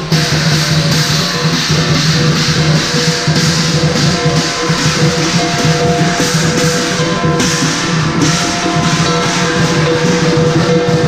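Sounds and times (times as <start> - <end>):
gong: 0.0 - 11.0
hand cymbals clashing: 0.0 - 11.0
large drum beating: 0.0 - 11.0.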